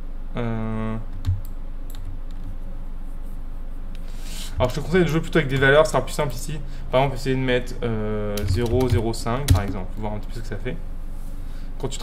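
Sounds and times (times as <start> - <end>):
computer keyboard and mouse clicks: 8.4 - 9.8.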